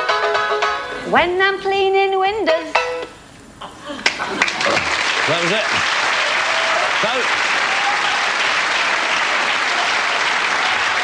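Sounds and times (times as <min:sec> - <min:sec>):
audience applause: 0:04.0 - 0:11.0.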